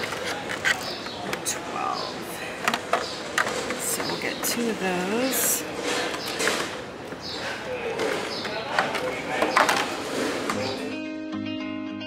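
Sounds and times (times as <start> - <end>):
plastic saucers clacking: 0.0 - 10.8
faint voices: 0.0 - 11.0
acoustic guitar music: 9.9 - 12.0.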